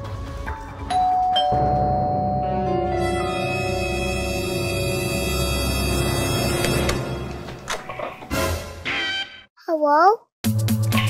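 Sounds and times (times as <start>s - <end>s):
background music: 0.0s - 9.3s
doorbell ding-dong chime: 0.9s - 3.0s.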